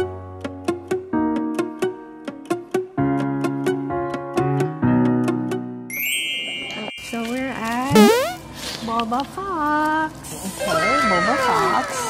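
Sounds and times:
bright sustained ding: 0:05.9 - 0:07.8
bending pitched tones: 0:07.9 - 0:08.4
plucked background music: 0:07.9 - 0:08.4
rising boing glide: 0:08.0 - 0:08.4.

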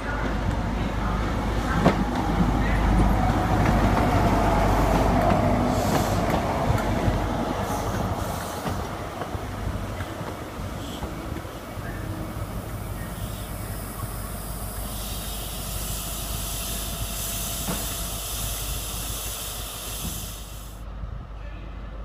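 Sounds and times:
diesel train passing: 0:00.0 - 0:22.0.

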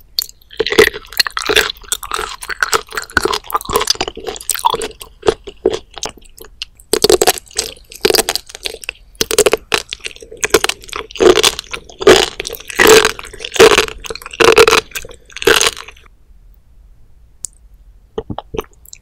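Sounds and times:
wet crunchy chewing: 0:00.2 - 0:16.1.

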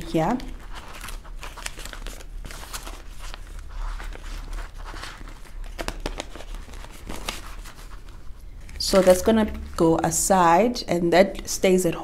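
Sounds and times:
banknotes and plastic pouch crinkling: 0:00.1 - 0:09.8.

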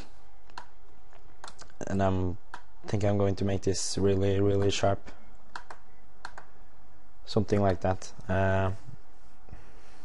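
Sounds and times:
keyboard keys tapping: 0:05.5 - 0:06.5.

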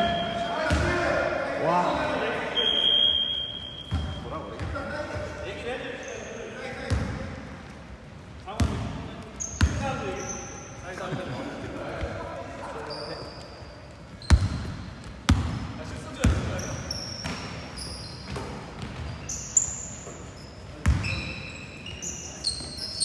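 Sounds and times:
sneaker squeaks: 0:00.0 - 0:00.9, 0:02.6 - 0:07.1, 0:08.5 - 0:23.0.

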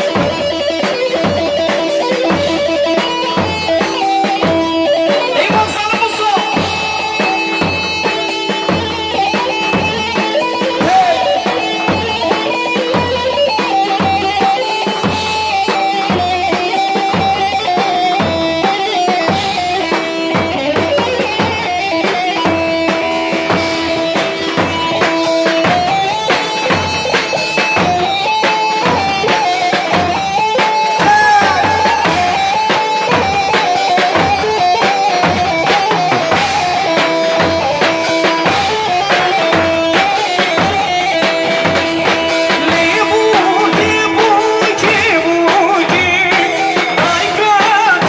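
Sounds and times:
drum kit beat: 0:00.0 - 0:48.0
electric saz melody: 0:00.0 - 0:48.0.

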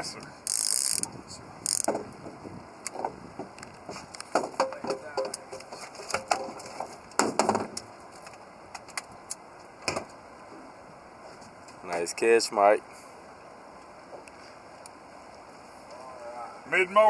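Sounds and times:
clicks and knocks on boat deck: 0:01.7 - 0:09.1, 0:09.8 - 0:10.2.

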